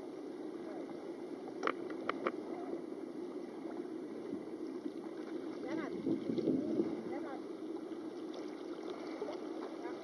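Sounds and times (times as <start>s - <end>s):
water sloshing and lapping: 3.4s - 10.0s.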